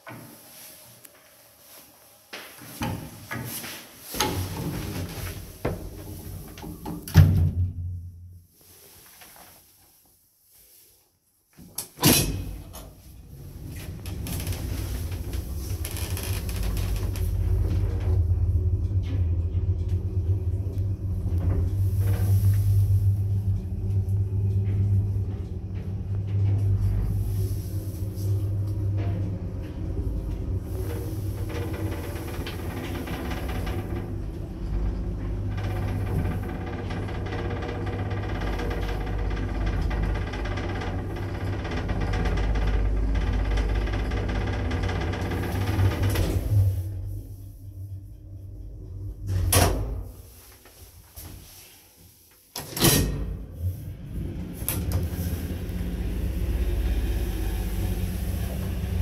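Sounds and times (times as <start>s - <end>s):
lift humming and rumbling: 0.0s - 9.6s, 11.8s - 59.0s.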